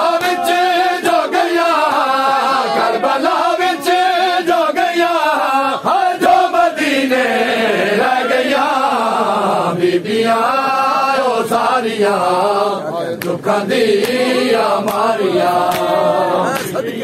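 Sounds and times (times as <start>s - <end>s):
men chanting a lament: 0.0s - 17.0s
hands slapping on chests: 0.1s - 0.5s, 13.2s - 13.4s, 14.0s - 14.2s, 14.8s - 16.8s.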